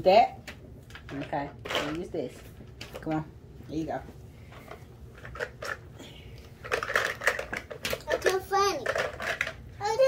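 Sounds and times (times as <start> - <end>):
plastic blocks clicking and rattling: 5.2 - 5.8, 6.6 - 9.6.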